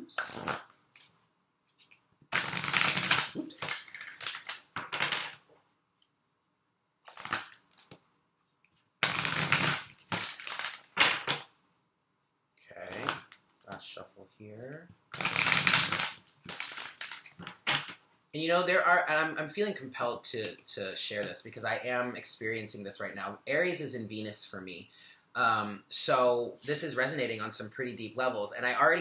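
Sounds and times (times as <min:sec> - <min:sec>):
cards being shuffled: 0:00.1 - 0:05.4, 0:07.0 - 0:08.0, 0:08.7 - 0:11.5, 0:12.8 - 0:13.8, 0:15.1 - 0:18.0.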